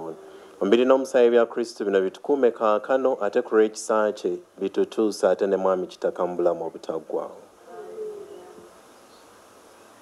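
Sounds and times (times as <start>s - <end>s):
faint background hiss: 0.0s - 10.0s.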